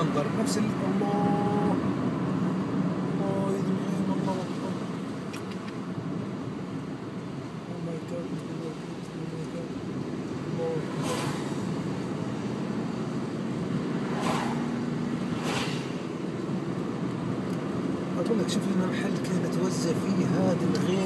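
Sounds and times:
car engine and tyre noise: 0.0 - 21.0
short hisses: 11.0 - 11.7, 14.0 - 16.3.

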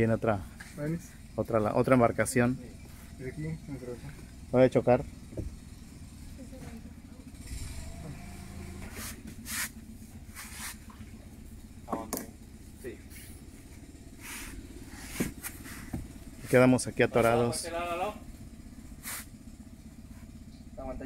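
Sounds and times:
outboard motor idling: 0.0 - 21.0.

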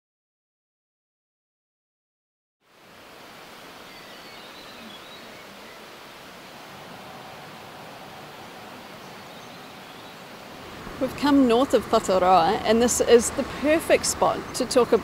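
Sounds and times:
steady rushing noise: 2.7 - 15.0
faint bird chirps: 3.8 - 10.3.

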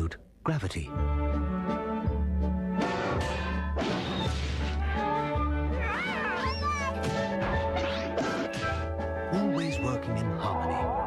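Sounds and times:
orchestral music: 0.8 - 11.0
high wavering cry: 5.8 - 7.0.

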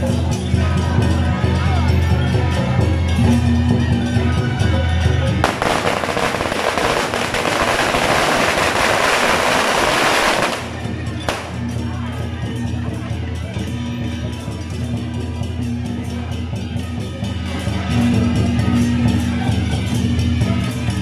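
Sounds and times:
festival music with heavy bass: 0.0 - 12.0
firecrackers crackling: 5.4 - 11.8.

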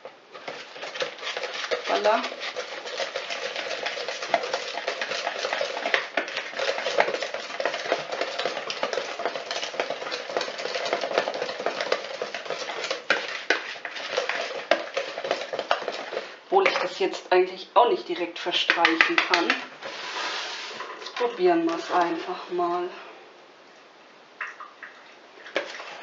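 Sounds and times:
whisk clicking against bowl: 0.3 - 17.0, 18.6 - 19.7.

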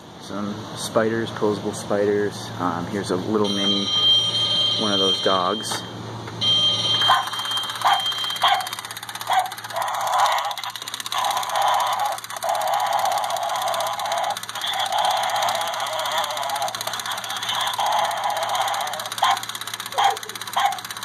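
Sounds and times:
thin narrow electronic noise: 3.4 - 20.8
toy dog barks through speaker: 7.0 - 10.3, 17.4 - 21.0.

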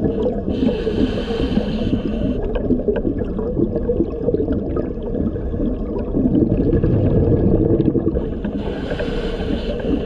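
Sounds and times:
underwater rumble and bubbles: 0.0 - 10.0
scuba regulator breathing hiss: 0.6 - 2.4, 8.6 - 10.0.

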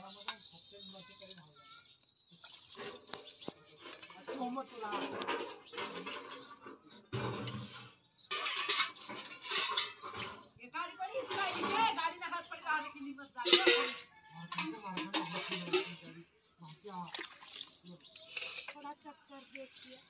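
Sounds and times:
steel pots and utensils clinking: 0.0 - 1.4, 2.4 - 20.0
woman talking: 10.6 - 17.2, 18.7 - 20.0.

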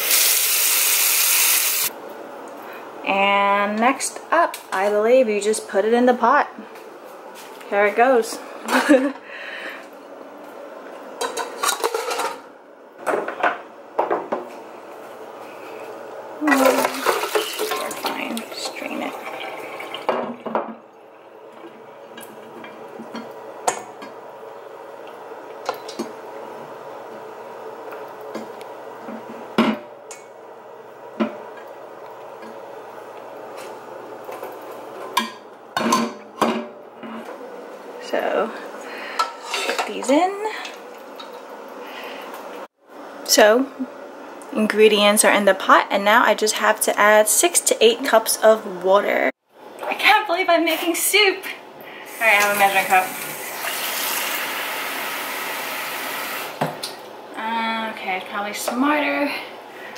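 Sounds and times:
tap running water: 0.0 - 1.9, 16.4 - 24.2, 52.1 - 57.1.

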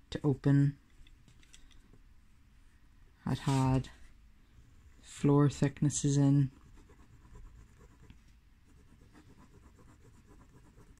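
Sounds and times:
pencil scratching on paper: 6.5 - 11.0.

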